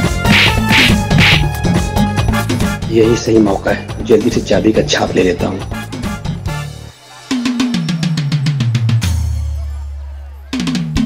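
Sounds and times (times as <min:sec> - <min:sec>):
background music with steady beat: 0:00.0 - 0:11.0
sharp hit sound effects: 0:00.2 - 0:01.5.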